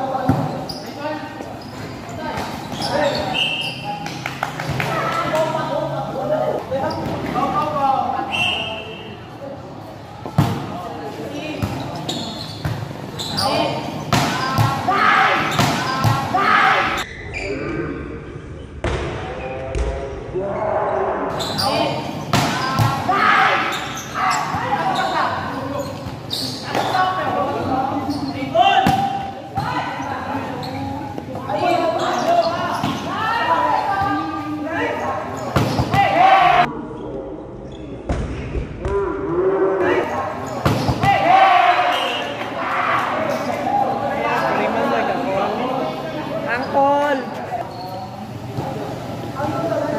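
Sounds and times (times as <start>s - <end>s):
shouting and chatter: 1.9s - 17.1s, 20.4s - 36.8s, 38.9s - 49.9s
volleyball hits: 14.0s - 16.5s, 22.2s - 23.7s, 28.8s - 29.7s, 40.6s - 41.3s.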